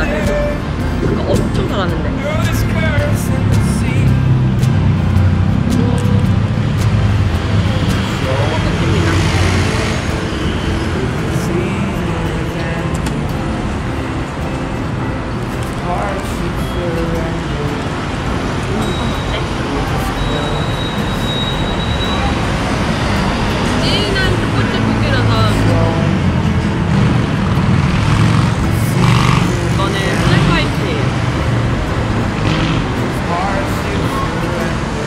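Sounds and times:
people talking indistinctly: 0.0 - 13.6, 15.1 - 35.0.

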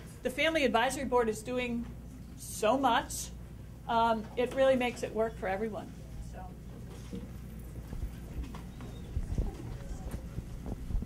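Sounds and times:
microphone handling knocks and rubs: 7.0 - 11.0.

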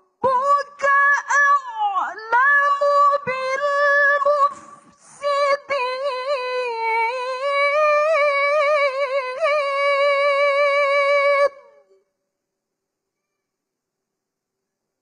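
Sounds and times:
woman reciting melodically: 0.0 - 12.1.

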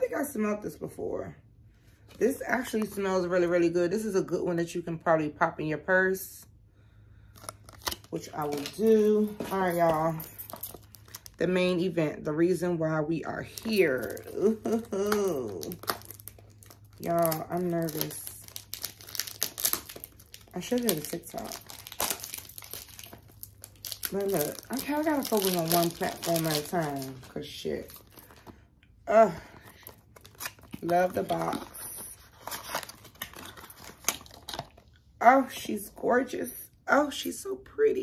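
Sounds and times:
woman's voice: 0.0 - 1.4, 2.2 - 6.5, 8.1 - 10.5, 11.4 - 16.0, 17.0 - 18.6, 20.5 - 21.7, 24.0 - 28.0, 29.0 - 29.7, 30.8 - 32.3, 35.2 - 38.0
cellophane crinkling and tearing: 7.3 - 11.4, 13.4 - 28.6, 29.5 - 35.0.

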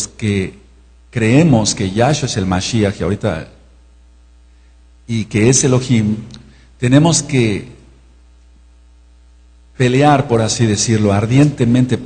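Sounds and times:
man speaking: 0.0 - 3.7, 5.1 - 8.0, 9.8 - 12.0
electrical mains hum: 0.0 - 12.0.

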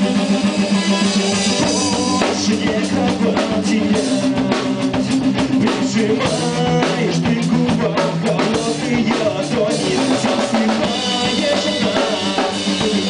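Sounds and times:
sustained guitar chords: 0.0 - 7.7
drum kit keeping time: 0.0 - 13.0.

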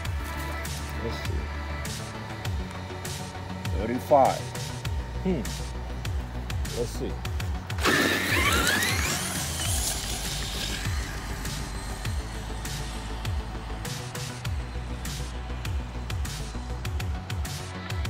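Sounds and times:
background music: 0.0 - 18.0
electric motor whine rising: 0.0 - 18.0.

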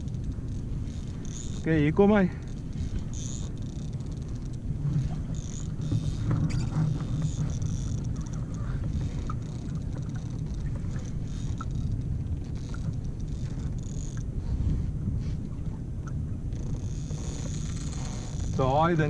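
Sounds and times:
wind rumble on microphone: 0.0 - 19.0.

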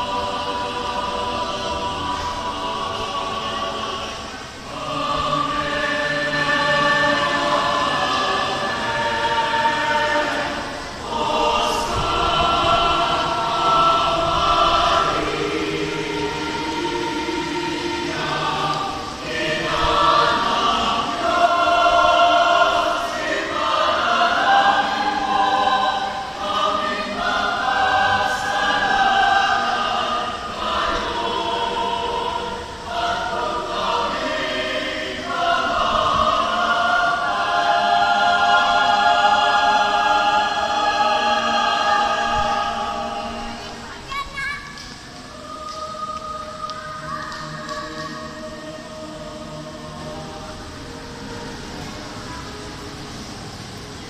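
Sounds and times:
choir singing chorale: 0.0 - 54.0.

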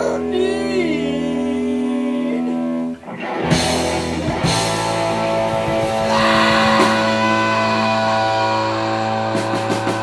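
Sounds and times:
live rock band playing: 1.4 - 10.0.

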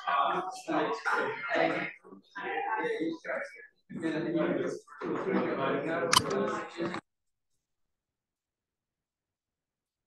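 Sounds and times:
people chattering in a room: 0.0 - 7.1
sharp click: 6.1 - 6.4.

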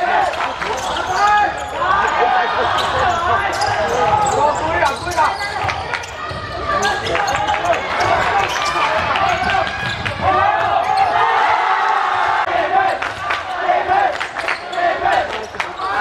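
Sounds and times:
players calling out: 0.0 - 16.0
shoes squeaking: 0.2 - 11.4.

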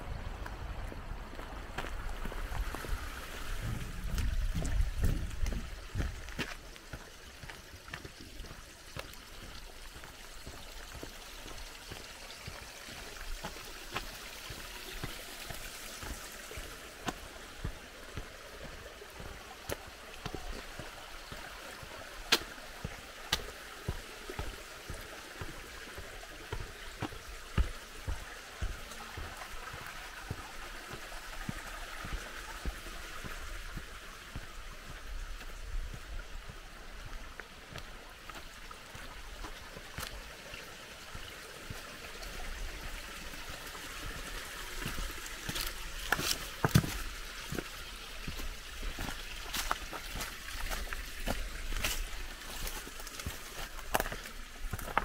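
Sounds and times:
mountain stream running: 0.0 - 55.0
footsteps on a path: 0.3 - 55.0.

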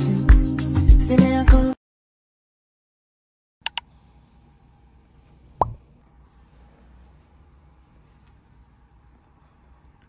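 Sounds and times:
short plop: 5.6 - 5.8.

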